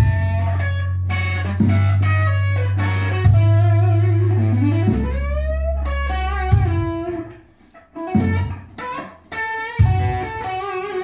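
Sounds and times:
electric guitar lead line: 0.0 - 11.0.

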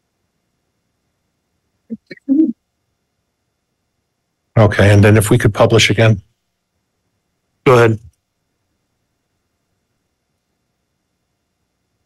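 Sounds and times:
person murmuring over microphone: 4.6 - 6.2, 7.7 - 8.1.

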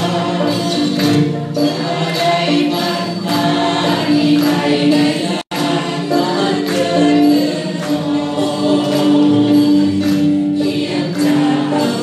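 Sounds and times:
crowd singing: 0.0 - 12.0
rhythmic hand clapping: 0.0 - 12.0.

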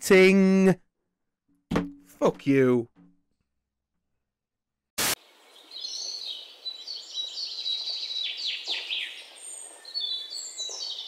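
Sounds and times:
static noise burst: 5.0 - 5.3
birds chirping: 5.2 - 11.0.

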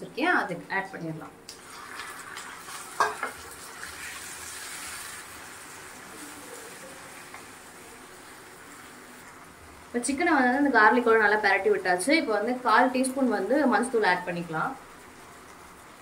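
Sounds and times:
chicken sizzling in hot oil: 1.5 - 16.0.

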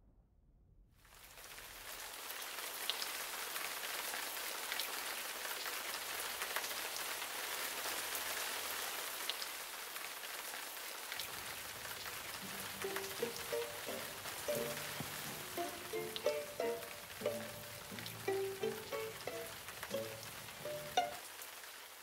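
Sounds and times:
sharp individual raindrops: 1.0 - 22.0
heavy rain falling: 1.1 - 22.0.

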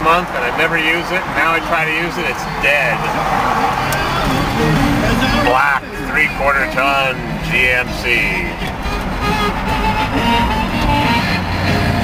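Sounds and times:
car engine drone: 0.0 - 12.0
music on radio: 0.0 - 12.0
road noise: 0.0 - 12.0.

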